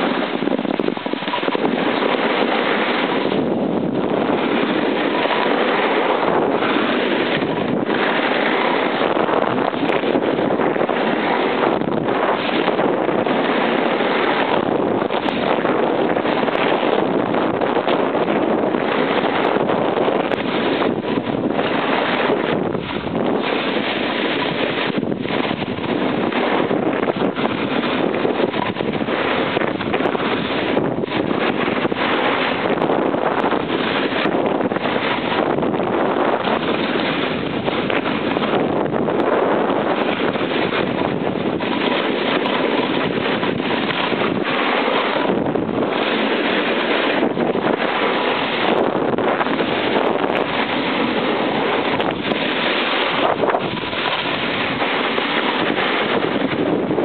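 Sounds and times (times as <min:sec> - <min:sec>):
skis sliding on snow: 0:00.0 - 0:57.0
wind over microphone: 0:00.0 - 0:57.0.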